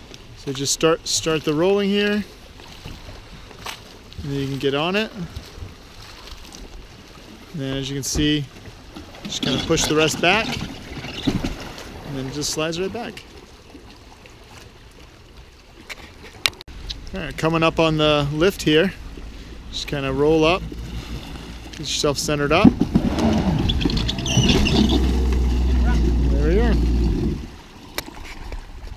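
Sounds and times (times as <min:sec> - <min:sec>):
jet ski idling: 0:16.8 - 0:27.7.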